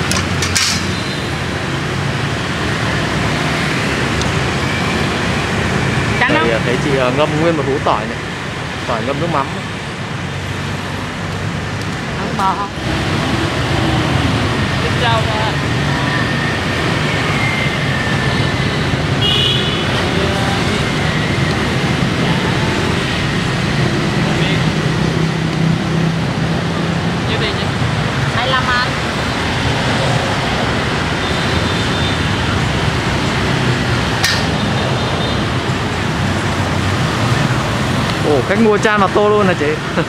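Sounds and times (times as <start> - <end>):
cars and motorbikes passing: 0.0 - 40.0
sharp click: 34.2 - 34.6.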